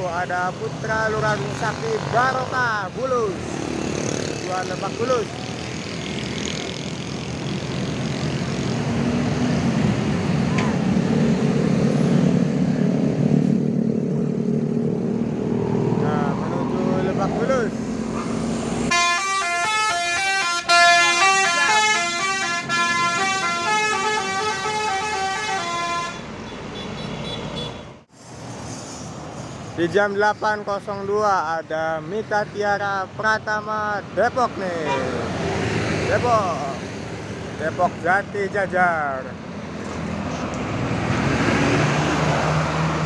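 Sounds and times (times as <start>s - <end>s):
bus diesel engine rumbling: 0.0s - 43.0s
multi-tone musical horn: 18.9s - 26.2s.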